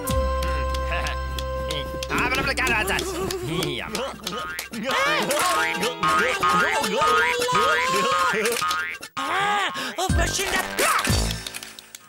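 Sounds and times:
character babbling: 2.1 - 8.6.

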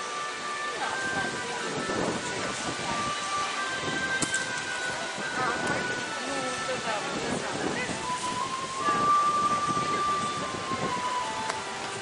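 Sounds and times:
music: 0.0 - 12.0
steady background hiss: 0.0 - 12.0
indistinct voices: 0.7 - 11.8.

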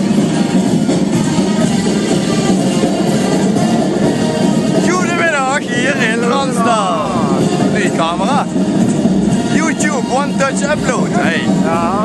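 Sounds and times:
loud background noise: 0.0 - 12.0
man's voice swinging in pitch: 4.8 - 8.5, 9.4 - 12.0.

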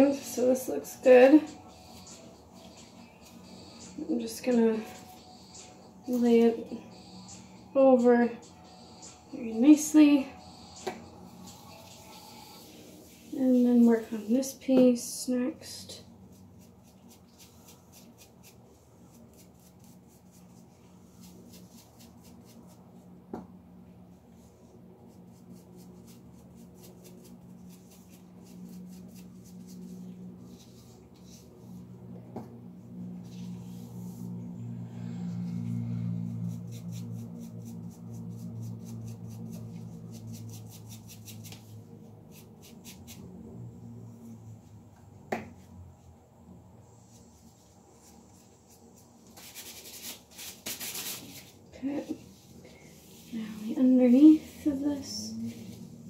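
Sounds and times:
low wavering hum: 0.0 - 14.6, 15.2 - 49.4, 51.2 - 56.0
hair rustling: 16.2 - 23.0, 36.3 - 43.2, 47.0 - 56.0.

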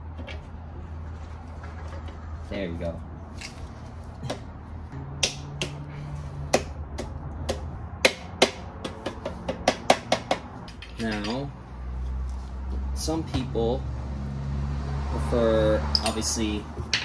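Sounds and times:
metal tools clinking: 10.7 - 11.5.

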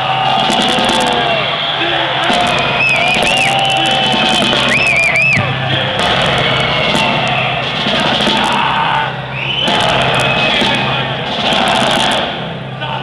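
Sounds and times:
crowd shouting: 0.0 - 13.0
metal band playing: 0.0 - 13.0.

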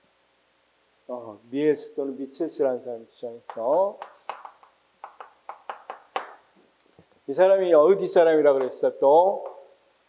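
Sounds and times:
chalk tapping on blackboard: 3.5 - 6.4.

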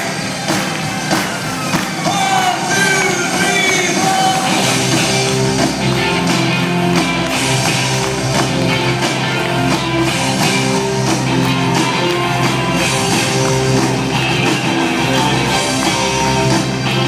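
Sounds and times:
drum kit: 0.0 - 17.0
electric guitar: 0.0 - 17.0
keyboards: 0.0 - 17.0.

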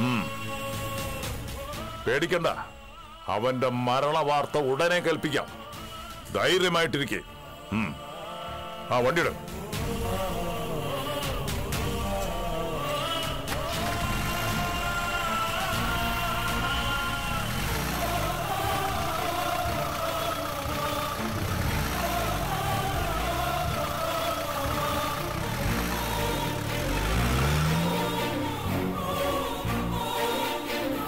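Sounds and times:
background music: 0.0 - 31.0
jeep engine revving: 9.8 - 30.4.

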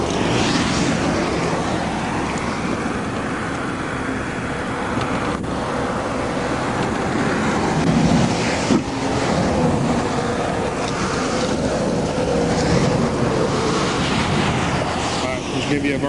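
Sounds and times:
highway traffic passing: 0.0 - 16.0
wind on microphone: 0.0 - 16.0.

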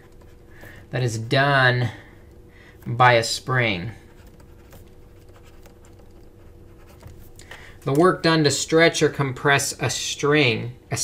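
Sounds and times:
stylus scratching on tablet: 4.0 - 7.3.

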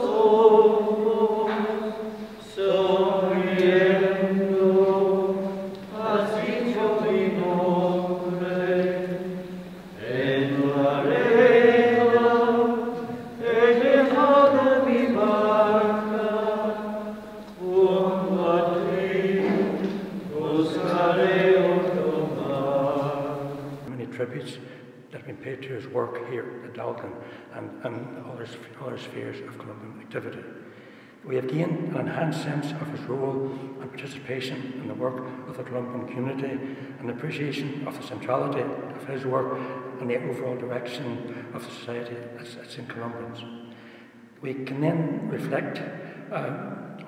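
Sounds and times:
slow sung hymn: 0.0 - 47.0.

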